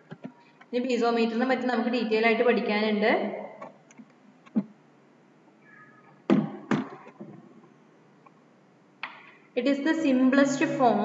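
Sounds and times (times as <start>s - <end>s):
sharp knocks: 6.3s - 7.4s.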